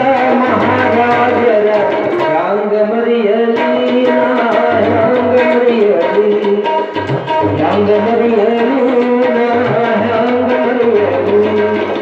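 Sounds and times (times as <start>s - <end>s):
harmonium melody: 0.0s - 12.0s
man singing: 0.0s - 12.0s
tabla drumming: 0.0s - 12.0s.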